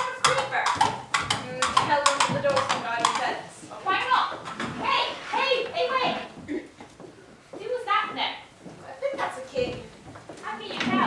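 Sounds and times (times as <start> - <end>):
coconut halves clopping as hoofbeats: 0.0 - 5.0
voices: 0.0 - 6.8, 7.6 - 11.0.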